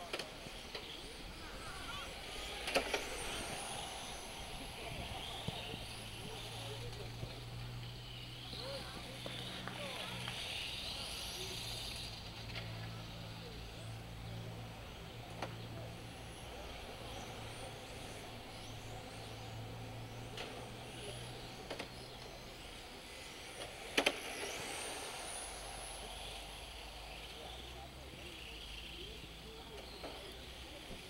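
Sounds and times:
rc car motors whining: 0.0 - 31.0.

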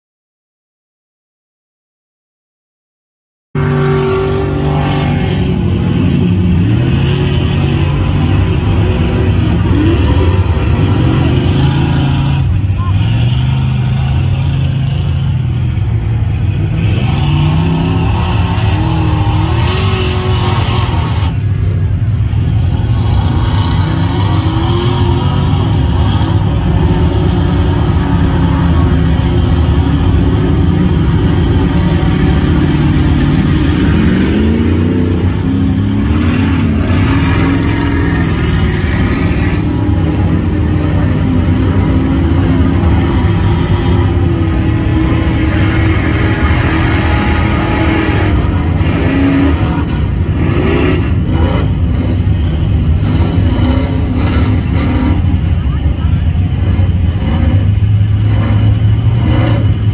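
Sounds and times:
truck engines revving: 3.6 - 59.9.

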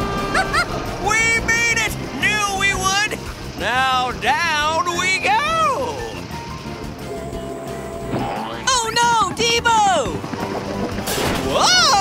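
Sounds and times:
upbeat background music: 0.0 - 12.0.

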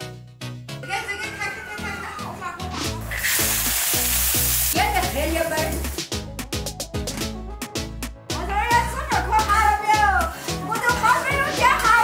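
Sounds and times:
background music with steady beat: 0.0 - 12.0
people talking: 0.8 - 3.1, 4.8 - 5.9, 8.4 - 12.0.

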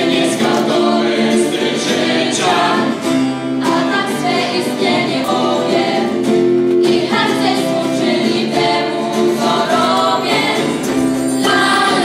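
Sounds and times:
acoustic guitars: 0.0 - 12.0
youth choir singing: 0.0 - 12.0.

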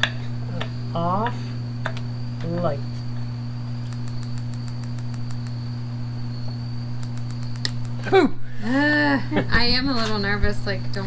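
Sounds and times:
low hum: 0.0 - 11.0
spark igniter clicking: 3.8 - 5.6, 6.9 - 8.0.

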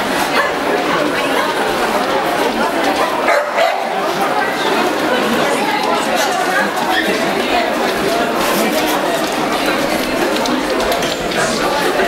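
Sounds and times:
crowd chatter: 0.0 - 12.0
dog barking: 3.2 - 4.0.

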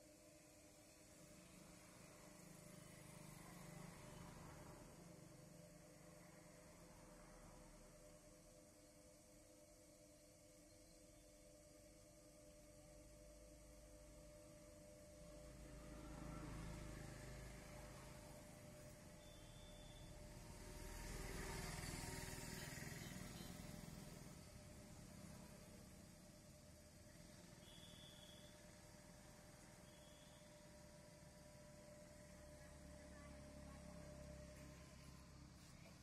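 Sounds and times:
potter's wheel motor hum: 0.0 - 36.0.

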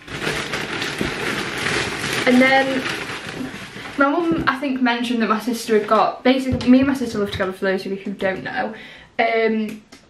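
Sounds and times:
plastic bag rustling: 0.0 - 8.6.

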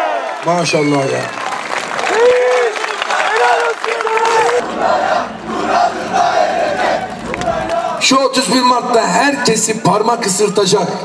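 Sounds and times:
crowd applauding and cheering: 0.0 - 8.6.

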